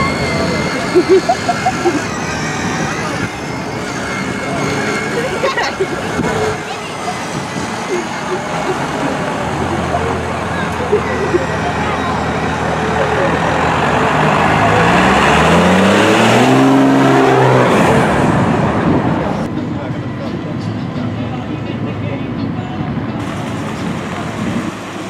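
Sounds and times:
people talking: 0.0s - 18.1s, 18.8s - 24.2s
car engine accelerating past: 7.4s - 19.5s.

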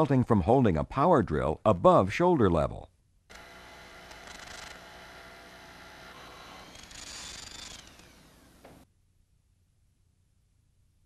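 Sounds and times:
electric power drill running: 3.3s - 8.8s.

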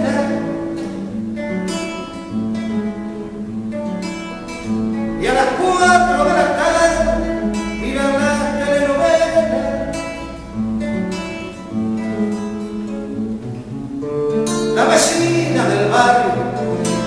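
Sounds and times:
classical guitar: 0.0s - 17.0s.

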